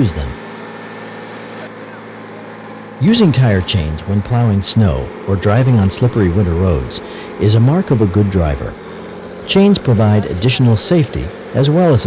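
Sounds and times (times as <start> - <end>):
truck engine running: 0.0 - 12.0.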